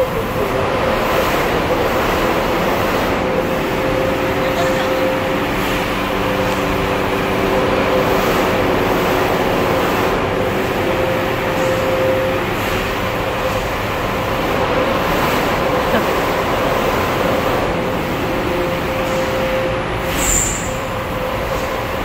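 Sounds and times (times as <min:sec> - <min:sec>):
simulator ride mechanical running: 0:00.0 - 0:22.0.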